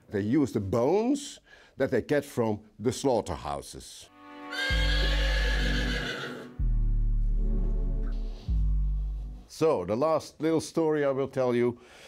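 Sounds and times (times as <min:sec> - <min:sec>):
horse whinnying: 0:04.4 - 0:06.6
music with deep bass: 0:06.5 - 0:09.5.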